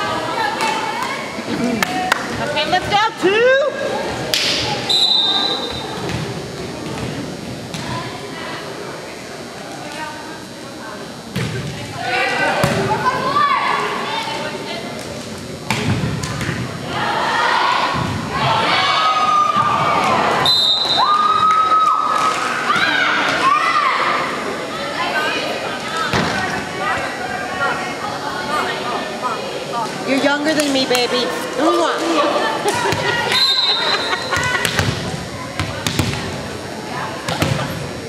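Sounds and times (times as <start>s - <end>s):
referee's whistle blast: 4.8s - 5.8s, 20.4s - 21.2s, 33.3s - 34.3s
shouts and cheers: 17.3s - 24.0s.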